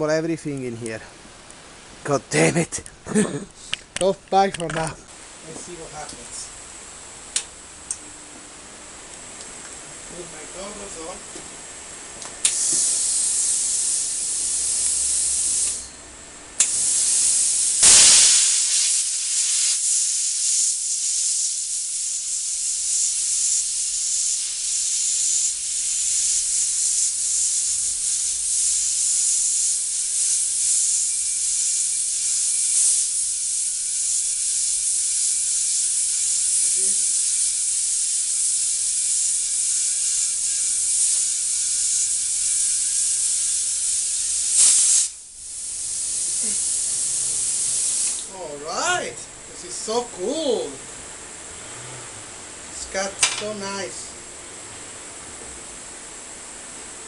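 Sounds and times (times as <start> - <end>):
plasma cutter hissing: 12.4 - 16.0, 16.6 - 50.8
sharp burst: 16.6 - 49.1.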